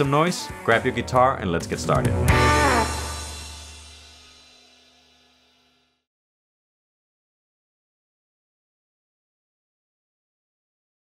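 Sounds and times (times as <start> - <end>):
rock band final chord: 1.9 - 4.5
cymbal ringing: 2.4 - 5.2.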